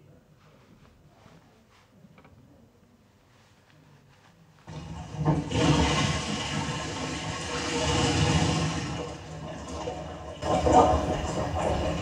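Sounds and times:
toilet flushing: 4.7 - 12.0.

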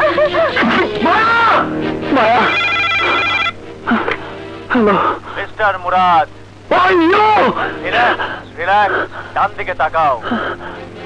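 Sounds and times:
warbling telephone ring: 2.2 - 3.6.

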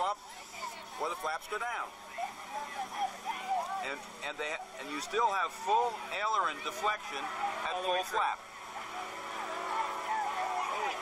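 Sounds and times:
man talking: 3.8 - 8.4.

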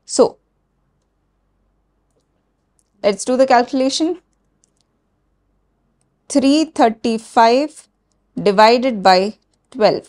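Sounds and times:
woman speaking: 0.1 - 0.4, 3.0 - 4.2, 6.3 - 7.8, 8.4 - 10.0.

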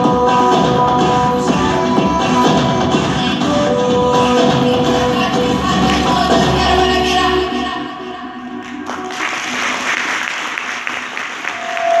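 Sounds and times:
stage music: 0.0 - 12.0
audience applause: 8.8 - 12.0
long high tone from crowd: 11.4 - 12.0.

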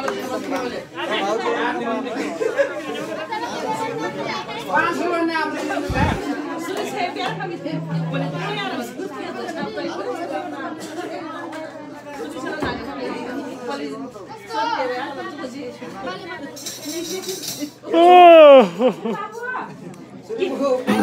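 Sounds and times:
crowd talking: 0.0 - 21.0.

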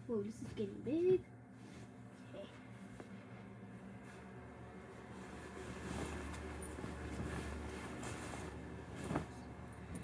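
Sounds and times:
blankets and clothes rustling: 0.0 - 10.0
low rumble of movement: 0.1 - 10.0.

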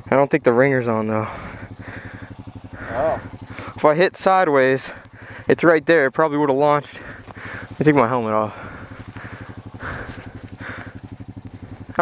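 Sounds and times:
atv engine idling: 0.0 - 12.0.

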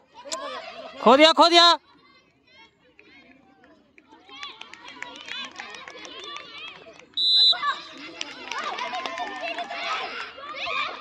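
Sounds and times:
whistle blast: 7.2 - 7.9.

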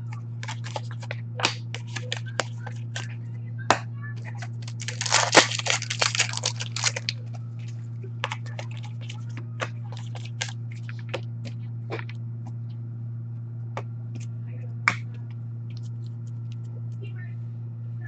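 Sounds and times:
low hum: 0.0 - 18.0
card rustling: 0.4 - 3.1, 4.4 - 11.2
cards clicking on glass counter: 0.4 - 3.1, 4.6 - 7.2, 8.2 - 11.2.

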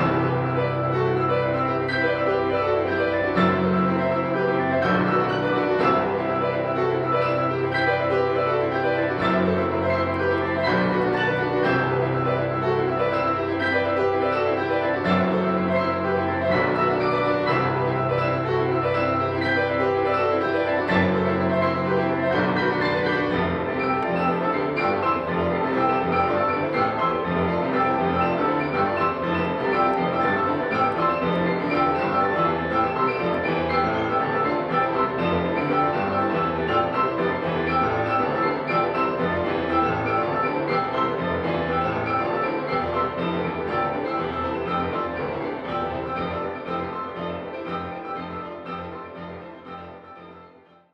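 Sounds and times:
grand pianos playing together: 0.0 - 50.9.

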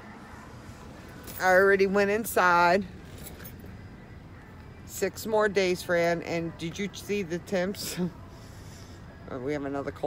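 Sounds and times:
car interior rumble and hum: 0.0 - 10.0.

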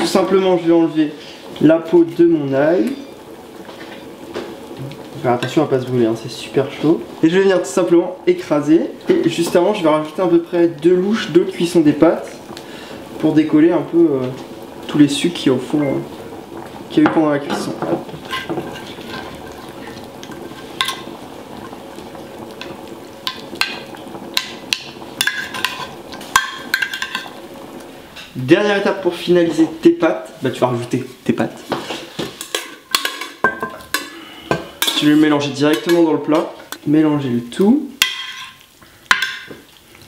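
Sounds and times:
hot sauce sizzling: 0.0 - 40.0.

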